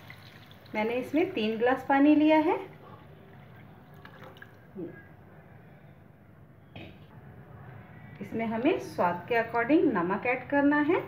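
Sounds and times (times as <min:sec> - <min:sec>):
water trickling into frying pan: 0:00.0 - 0:01.8.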